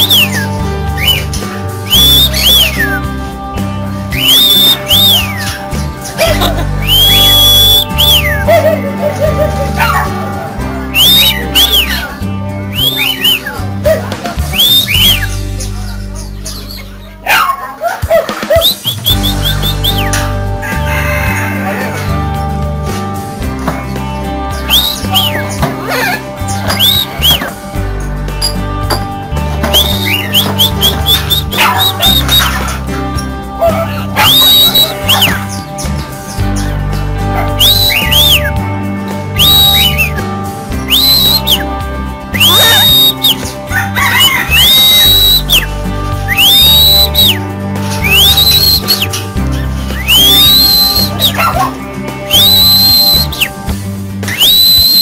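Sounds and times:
steady bass notes: 0:00.0 - 0:17.6, 0:18.8 - 0:55.0
background music: 0:00.0 - 0:55.0
birds chirping: 0:00.0 - 0:55.0
whistle-like gliding lead: 0:01.9 - 0:03.0, 0:04.1 - 0:05.5, 0:06.8 - 0:08.4, 0:34.2 - 0:35.4, 0:37.6 - 0:38.6, 0:39.4 - 0:40.2, 0:40.9 - 0:43.4, 0:44.5 - 0:45.7, 0:46.3 - 0:47.4, 0:48.0 - 0:49.1, 0:50.0 - 0:51.4, 0:52.3 - 0:53.5, 0:54.3 - 0:55.0.

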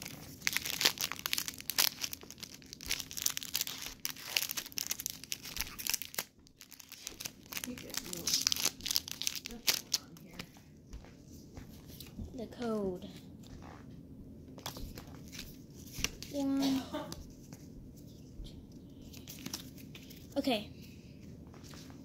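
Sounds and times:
foil wrapper crinkling and tearing: 0:00.0 - 0:10.5.

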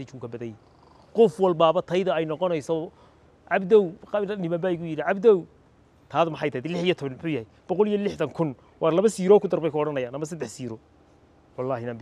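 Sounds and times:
man speaking: 0:01.2 - 0:05.5, 0:06.1 - 0:10.8, 0:11.6 - 0:12.0.

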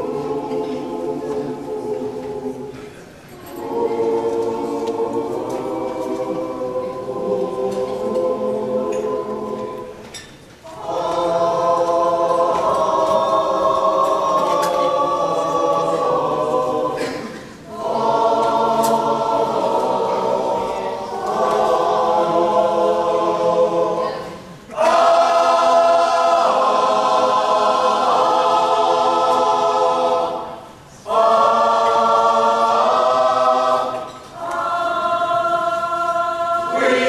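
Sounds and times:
mixed chorus singing in harmony: 0:00.0 - 0:37.0.

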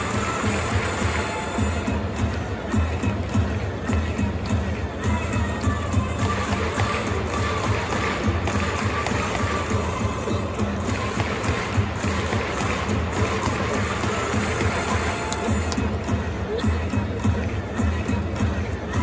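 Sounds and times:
crowd noise: 0:00.0 - 0:19.0
music in a stadium: 0:00.0 - 0:19.0.

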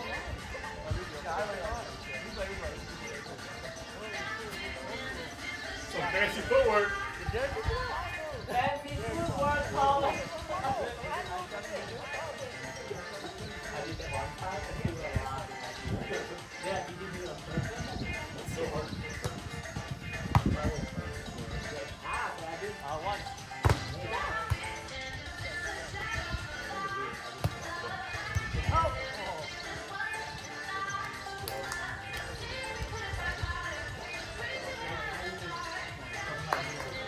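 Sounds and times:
background music: 0:00.0 - 0:37.0
people talking and calling out: 0:00.0 - 0:37.0
players' voices: 0:00.0 - 0:37.0.

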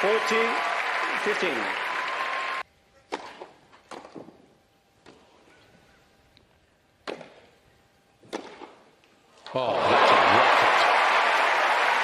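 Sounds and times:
crowd applause: 0:00.0 - 0:02.6, 0:09.6 - 0:12.0
racket hitting tennis ball: 0:08.2 - 0:08.8.

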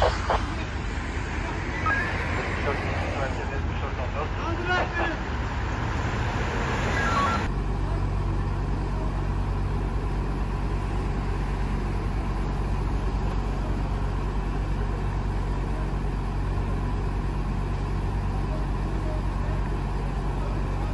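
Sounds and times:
street noise: 0:00.0 - 0:20.9
truck engine idling: 0:00.0 - 0:20.9.

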